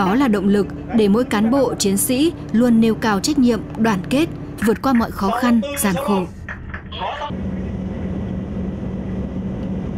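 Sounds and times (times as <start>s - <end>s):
ship engines droning: 0.0s - 9.9s.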